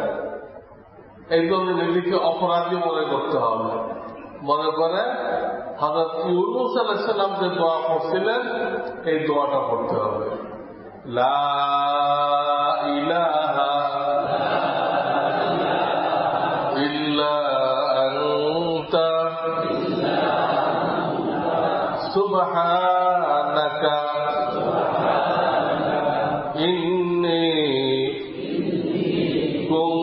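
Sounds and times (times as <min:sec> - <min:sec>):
man chanting: 0:01.3 - 0:20.7, 0:21.6 - 0:30.0.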